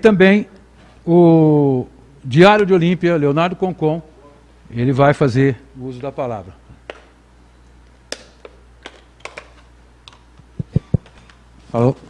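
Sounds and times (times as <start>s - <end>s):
low thumps on microphone: 10.6s - 11.0s.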